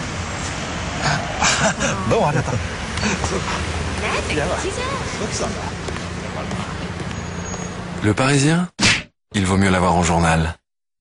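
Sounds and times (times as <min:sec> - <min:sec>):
road noise: 0:00.0 - 0:08.8.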